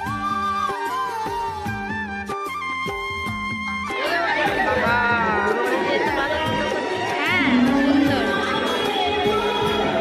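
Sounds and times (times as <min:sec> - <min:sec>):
crowd chatter: 0:03.9 - 0:10.0.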